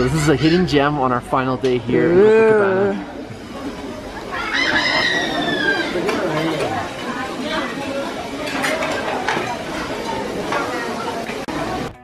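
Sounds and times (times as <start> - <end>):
people talking: 0.0 - 12.0
rooster crowing: 4.4 - 6.1.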